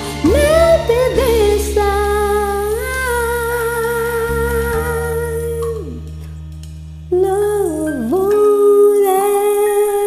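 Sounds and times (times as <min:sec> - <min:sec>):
karaoke backing track: 0:00.0 - 0:10.0.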